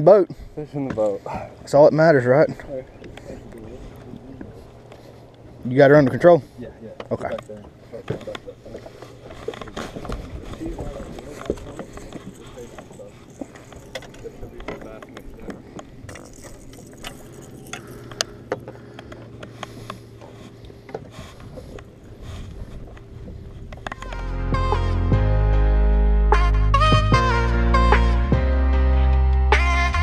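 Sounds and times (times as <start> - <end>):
fishing tackle clicks and knocks: 7.0 - 21.1
music: 24.0 - 30.0.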